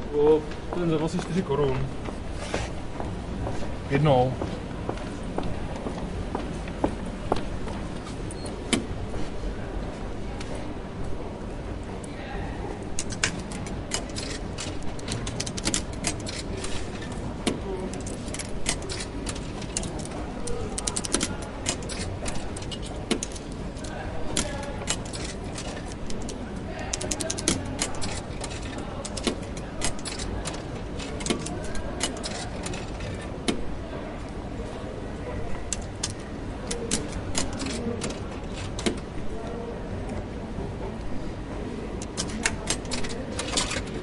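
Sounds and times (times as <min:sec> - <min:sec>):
faint indistinct voices: 0:00.0 - 0:44.0
sharp clicks and clacks: 0:13.0 - 0:33.6.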